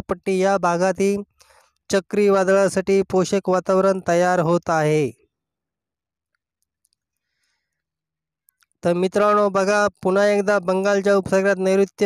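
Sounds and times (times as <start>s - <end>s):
narrator speaking: 0.0s - 1.3s, 1.9s - 5.3s, 8.7s - 12.0s
faint clicks: 6.2s - 8.9s.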